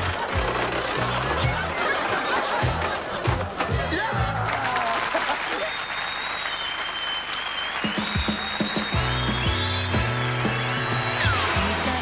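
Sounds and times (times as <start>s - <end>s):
audience applause: 0.0s - 12.0s
theme music: 8.0s - 12.0s.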